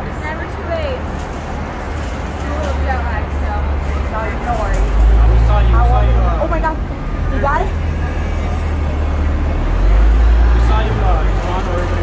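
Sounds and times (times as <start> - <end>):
idling vehicles and road traffic: 0.0 - 12.0.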